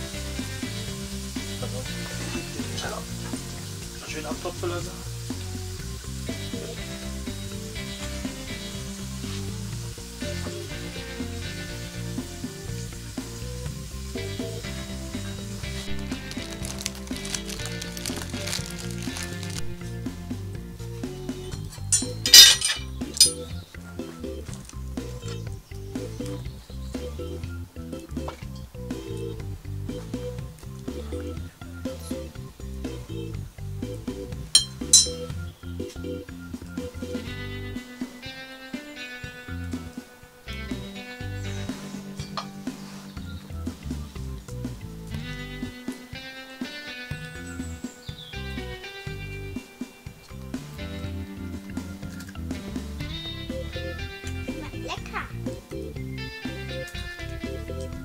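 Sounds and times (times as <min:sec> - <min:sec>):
potatoes sizzling in hot fat: 0:00.0 - 0:20.4
background music: 0:00.0 - 0:58.0.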